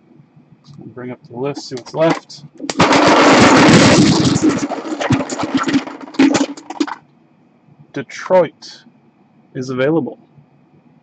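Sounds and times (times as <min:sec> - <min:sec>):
plastic chips rattling in a cup: 0:02.7 - 0:07.0.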